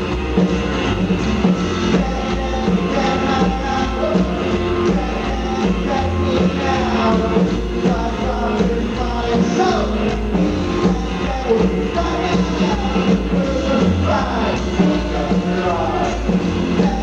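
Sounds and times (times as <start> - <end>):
rockabilly band playing: 0.0 - 17.0.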